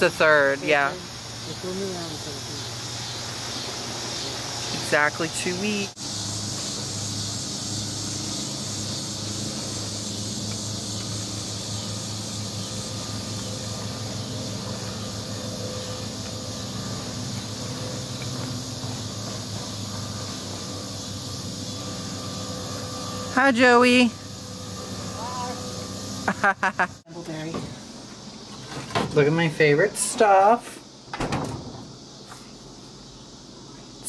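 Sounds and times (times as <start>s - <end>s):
insect chorus: 0.0s - 34.0s.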